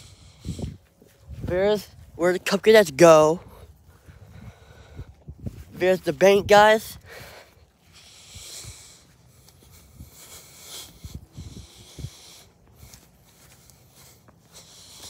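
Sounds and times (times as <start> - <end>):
person breathing into phone: 7.0 - 15.0.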